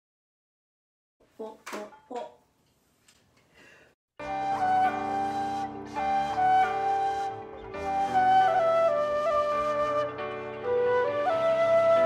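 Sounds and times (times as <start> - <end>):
bamboo flute melody: 4.2 - 12.0.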